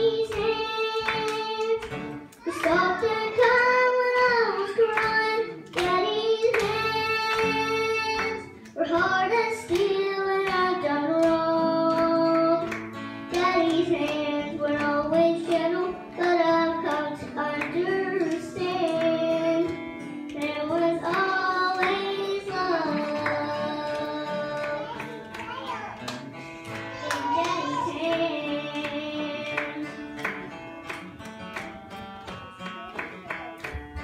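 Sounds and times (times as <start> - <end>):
girl singing gospel song: 0.0 - 26.0, 26.7 - 30.3
acoustic guitar: 0.0 - 34.0.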